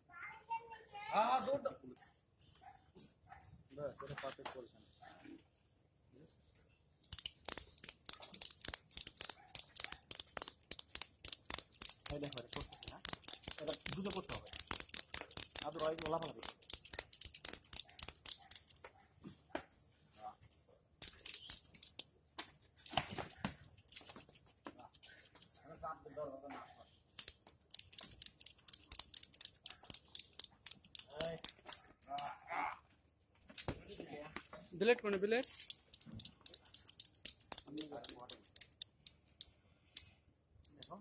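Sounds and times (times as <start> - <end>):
bander tool clicking: 7.0 - 18.8, 27.2 - 32.3, 35.4 - 41.0.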